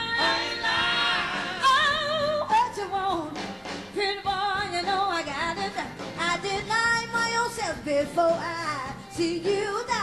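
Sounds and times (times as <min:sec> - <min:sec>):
live band playing: 0:00.0 - 0:10.0
woman singing blues: 0:01.5 - 0:10.0.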